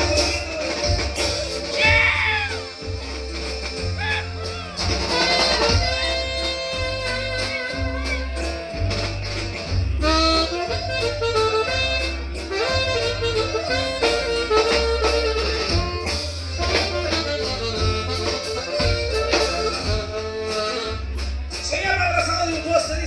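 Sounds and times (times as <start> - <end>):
drums: 0.0 - 23.0
electric bass line: 0.0 - 23.0
guitar: 0.0 - 23.0
harmonica melody: 0.0 - 23.0.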